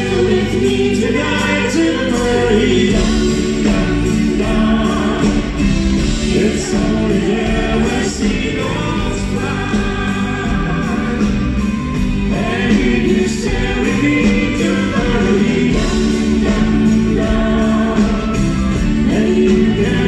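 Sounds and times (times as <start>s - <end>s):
live band with drums: 0.0s - 20.0s
singers in harmony: 0.0s - 20.0s.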